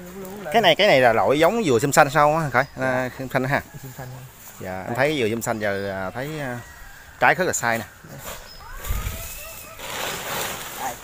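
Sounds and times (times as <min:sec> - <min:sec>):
dry palm fronds rustling: 0:00.0 - 0:11.0
plastic tarpaulin crinkling: 0:08.6 - 0:11.0.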